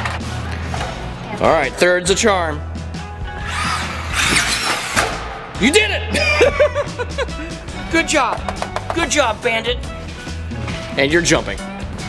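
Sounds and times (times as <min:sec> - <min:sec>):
background music: 0:00.0 - 0:12.0
electric rc buggy whining: 0:03.4 - 0:05.0.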